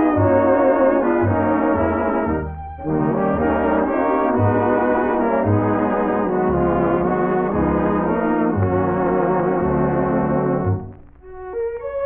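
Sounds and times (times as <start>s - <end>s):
brass section playing swing: 0.0s - 12.0s.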